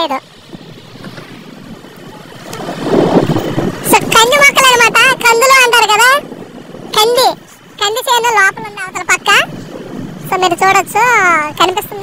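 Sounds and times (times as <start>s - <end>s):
moving motorcycle: 0.0s - 12.0s.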